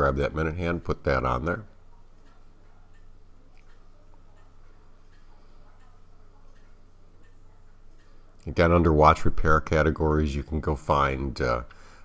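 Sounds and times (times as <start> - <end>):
clock ticking: 0.0 - 9.9
low steady hum: 0.0 - 12.0.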